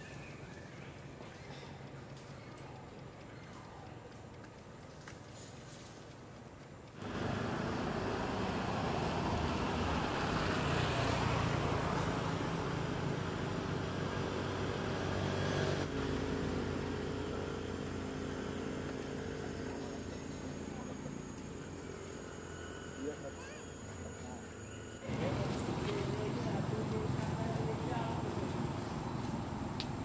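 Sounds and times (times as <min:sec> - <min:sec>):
engine humming: 0:06.8 - 0:30.0.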